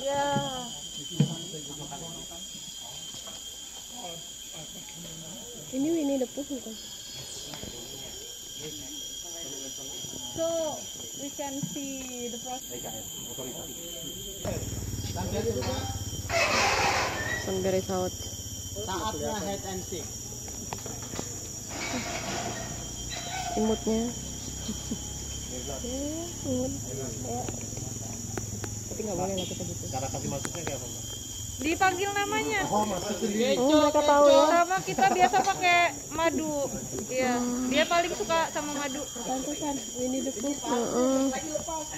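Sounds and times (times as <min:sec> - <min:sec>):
people talking: 0:00.0 - 0:18.2, 0:18.8 - 0:20.1, 0:23.3 - 0:41.9
high-pitched insect drone: 0:00.0 - 0:41.9.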